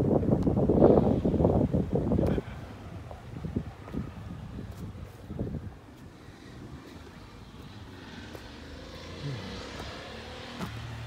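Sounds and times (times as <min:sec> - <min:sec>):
distant motor vehicle passing: 0:02.1 - 0:11.0.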